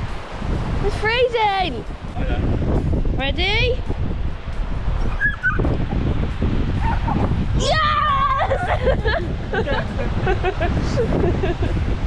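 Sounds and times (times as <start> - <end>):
wind buffeting microphone: 0.0 - 12.0
dog whining: 5.1 - 5.6
dog yipping: 5.1 - 5.7, 6.8 - 7.2.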